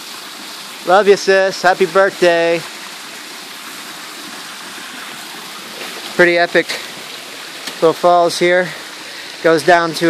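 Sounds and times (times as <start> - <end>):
waterfall cascading over rocks: 0.0 - 10.0.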